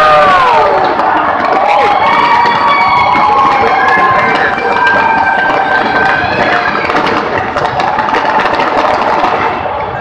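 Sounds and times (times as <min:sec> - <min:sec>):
fireworks crackling: 0:00.0 - 0:10.0.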